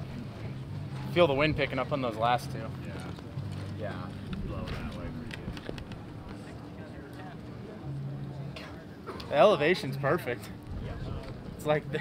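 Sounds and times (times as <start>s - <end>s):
people talking: 0.0s - 3.2s, 3.8s - 12.0s.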